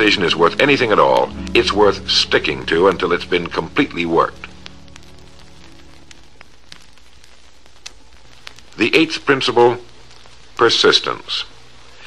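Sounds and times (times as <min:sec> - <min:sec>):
quiet background music: 0:00.0 - 0:11.6
steady hiss: 0:00.0 - 0:12.0
faint clicks: 0:06.4 - 0:08.8.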